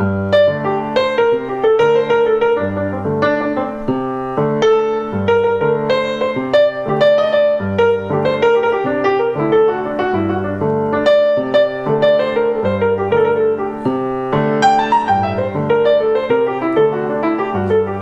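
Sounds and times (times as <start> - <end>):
jazz piano: 0.0 - 18.0.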